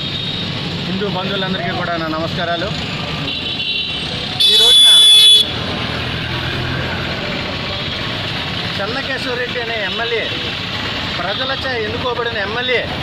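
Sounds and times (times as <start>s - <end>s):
road traffic noise: 0.0s - 13.0s
vehicle horn blare: 3.3s - 5.6s.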